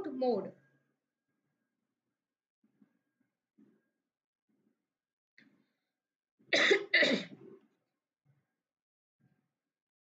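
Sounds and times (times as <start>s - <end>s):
woman coughing: 6.6s - 7.4s.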